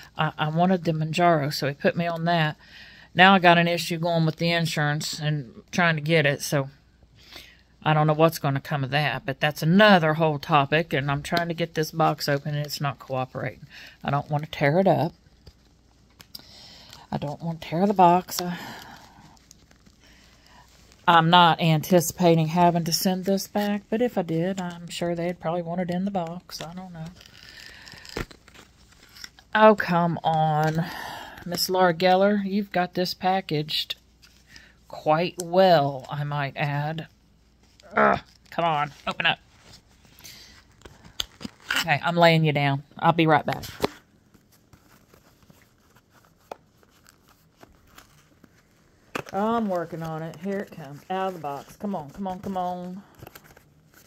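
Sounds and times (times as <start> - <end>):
low steady hum: 0.0 - 54.0.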